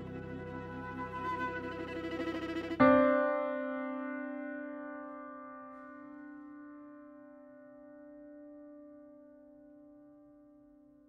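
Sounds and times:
drone-like musical tone: 0.0 - 2.8.

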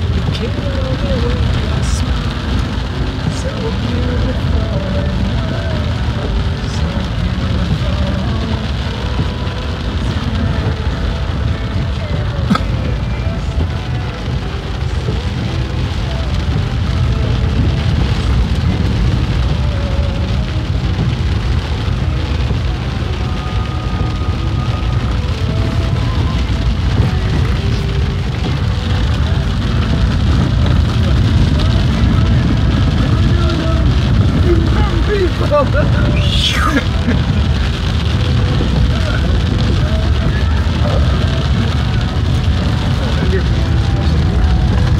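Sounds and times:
heavy rain on car roof: 0.0 - 44.9
vehicle rumble on wet dirt road: 0.0 - 44.9.

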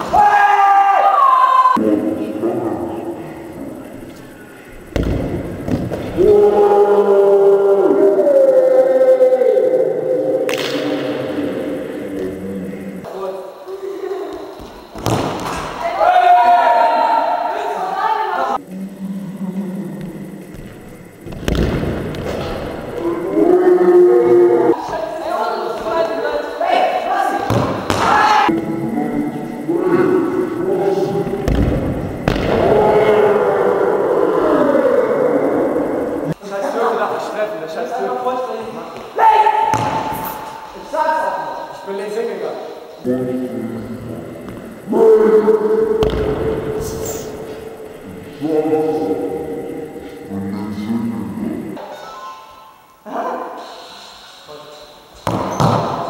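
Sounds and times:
ball striking hard: 4.9 - 6.2, 15.0 - 15.8, 21.2 - 22.5, 27.4 - 28.4, 31.4 - 32.6, 39.6 - 40.4, 46.0 - 46.6, 55.2 - 56.0
voices shouting a chant: 6.1 - 14.4, 15.8 - 20.0, 22.8 - 31.5, 38.0 - 42.8
sudden hissing noise: 17.2 - 56.0.

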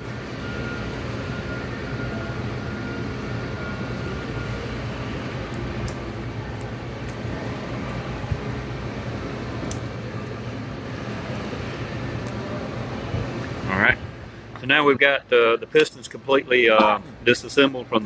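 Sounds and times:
faint high whine: 0.0 - 18.0
machine humming: 0.0 - 18.0.

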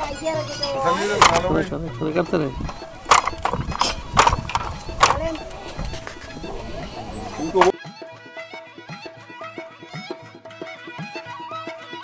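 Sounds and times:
wooden handloom clacking: 0.0 - 1.7, 2.6 - 7.7.

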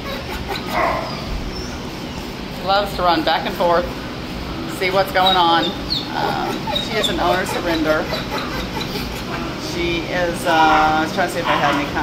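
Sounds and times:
steady low hum: 0.0 - 12.0
dog barking: 0.7 - 1.2, 10.6 - 12.0.

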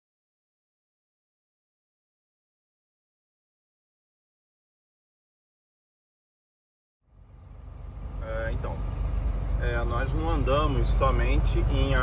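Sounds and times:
road noise: 7.0 - 12.0
truck engine rumble: 7.0 - 12.0
man speaking: 9.6 - 12.0.

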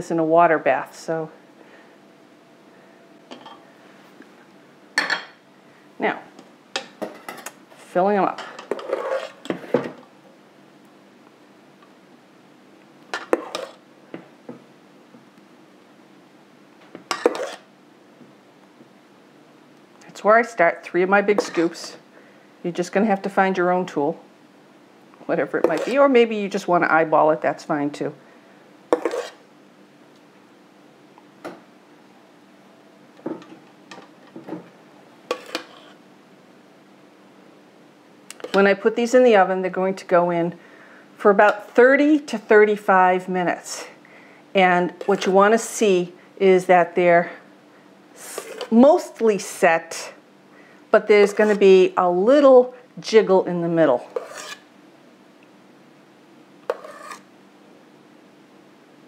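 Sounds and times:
metal spoon scraping metal bowl: 8.7 - 9.4, 17.1 - 17.7, 21.4 - 21.8, 25.6 - 26.0, 29.0 - 29.4, 35.3 - 36.0, 48.3 - 48.8, 54.1 - 54.6, 56.7 - 57.2.

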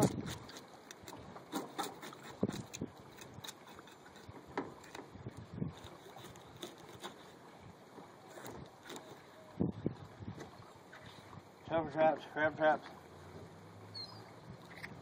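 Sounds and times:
knife scraping fish: 0.0 - 7.4, 8.3 - 9.3.

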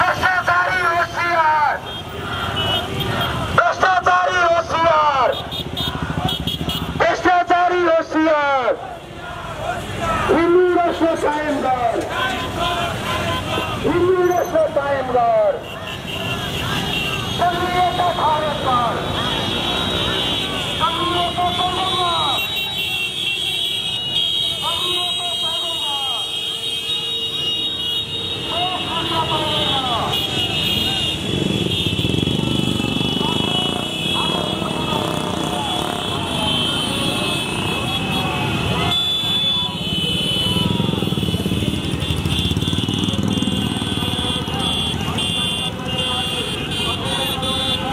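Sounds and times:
voice through a loudspeaker: 0.0 - 1.9, 3.5 - 6.2, 6.8 - 15.8, 16.7 - 19.6, 20.6 - 22.7, 24.4 - 26.4, 28.4 - 31.5, 32.2 - 37.2, 43.1 - 47.9
motorcycles passing: 0.0 - 47.9
people shouting: 2.2 - 7.1, 8.2 - 14.2, 15.5 - 23.1, 32.4 - 41.5
motorcycle engine running: 5.4 - 7.0, 30.3 - 47.8.

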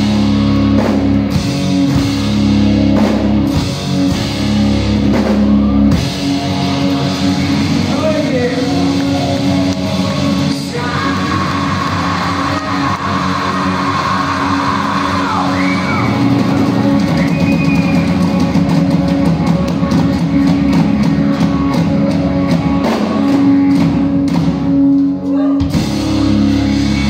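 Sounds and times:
cymbals and drums: 0.0 - 6.7
live acoustic rock band: 0.0 - 27.0
vocals: 7.8 - 9.3, 10.2 - 16.0.

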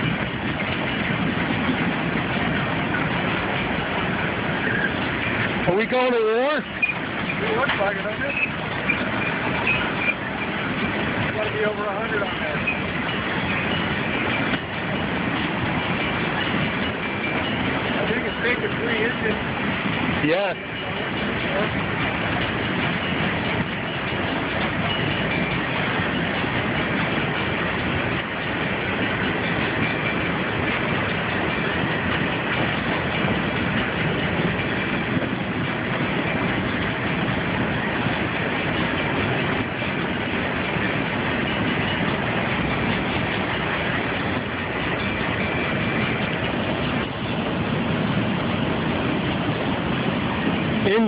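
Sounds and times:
freight train wheels on rails: 0.0 - 51.0.

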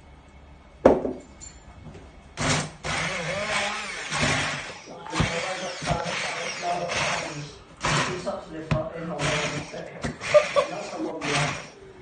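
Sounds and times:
stick blender pureeing sauce: 2.9 - 11.8.

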